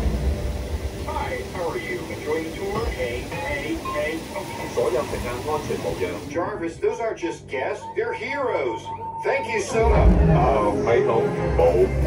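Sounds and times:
low rumbling soundtrack: 0:00.0 - 0:04.3, 0:09.7 - 0:12.0
voices talking: 0:01.1 - 0:12.0.

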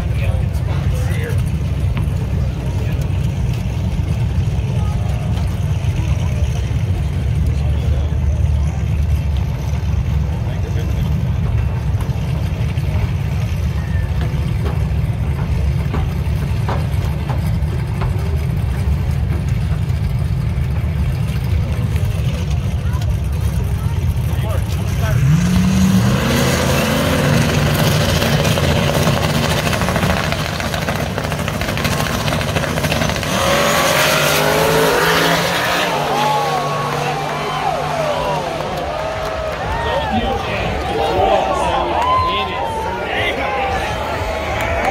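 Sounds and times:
race car engines revving: 0:00.0 - 0:44.9
spectators shouting: 0:33.4 - 0:44.9.

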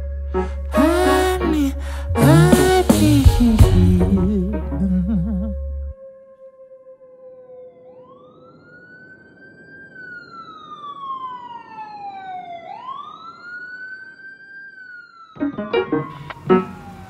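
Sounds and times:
faint low tone: 0:00.0 - 0:06.0
ambulance siren wailing: 0:04.3 - 0:17.0.

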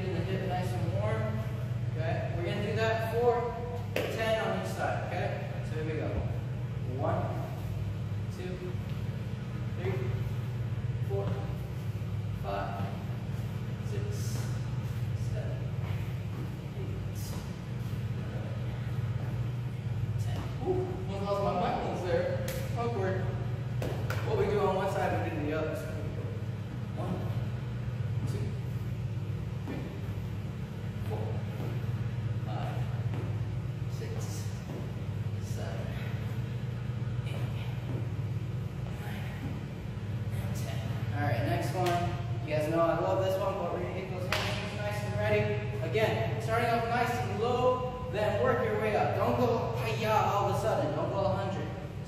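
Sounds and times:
man talking: 0:00.0 - 0:28.9, 0:30.9 - 0:36.5, 0:40.2 - 0:52.0
steady low hum: 0:00.0 - 0:52.0.

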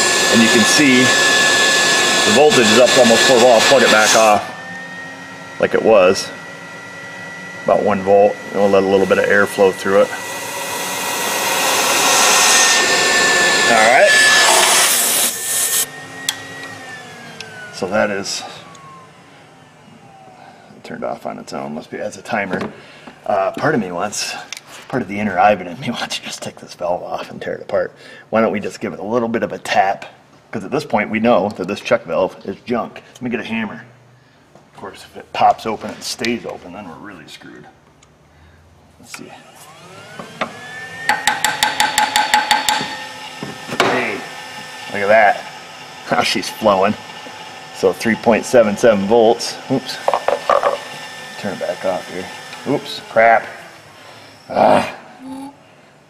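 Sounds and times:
air pump whooshing and whining: 0:00.0 - 0:20.8, 0:39.2 - 0:55.0
hammer tapping on valve: 0:41.1 - 0:42.9.

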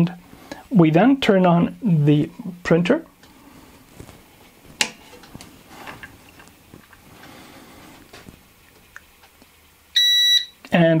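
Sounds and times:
handling rustle: 0:03.5 - 0:08.8.

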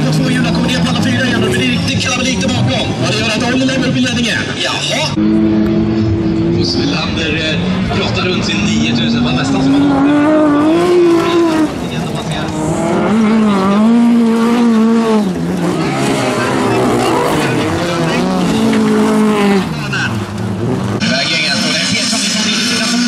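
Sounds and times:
race car engines revving: 0:00.0 - 0:23.0.

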